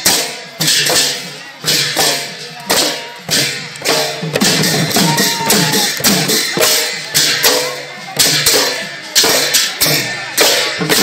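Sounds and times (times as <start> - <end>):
barrel drums beating: 0.0 - 11.0
hand cymbals clashing: 0.0 - 11.0.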